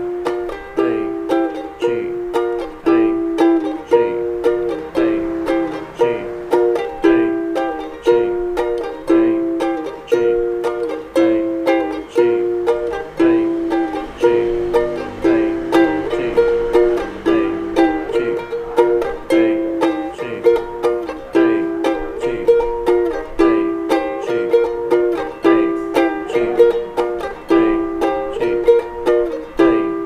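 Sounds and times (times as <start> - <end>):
ukulele strumming: 0.0 - 30.0.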